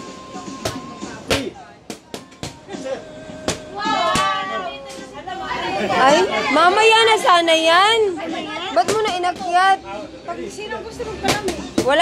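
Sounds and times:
voices talking and calling out: 0.2s - 12.0s
strike smacking a pad: 0.6s - 2.6s.

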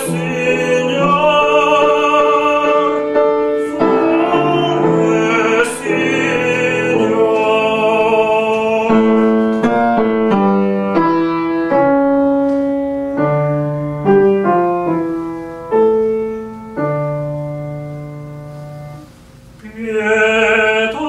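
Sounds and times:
grand piano playing: 0.0s - 19.2s.

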